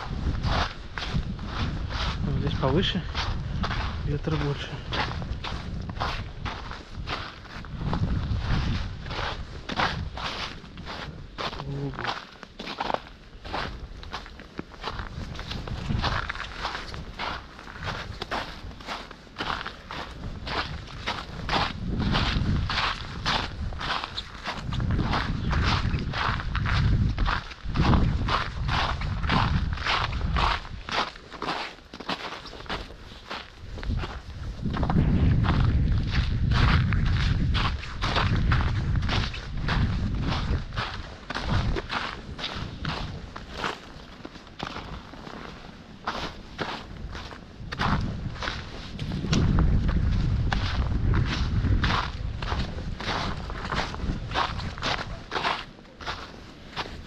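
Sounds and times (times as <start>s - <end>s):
footsteps in snow: 0.0s - 57.0s
wind noise on microphone: 0.0s - 57.0s.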